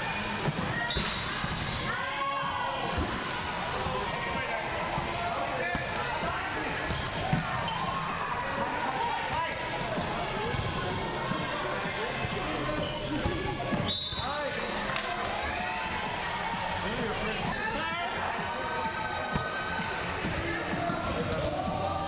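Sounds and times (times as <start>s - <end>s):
players calling and chattering: 0.0s - 22.0s.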